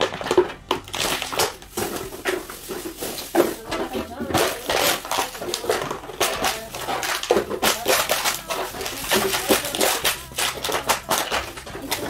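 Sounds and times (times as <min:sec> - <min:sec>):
cans and bottles clattering: 0:00.0 - 0:12.0.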